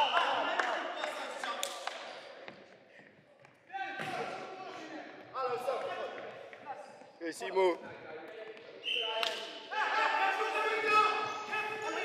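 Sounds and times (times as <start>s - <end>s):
players shouting calls: 8.8s - 12.0s.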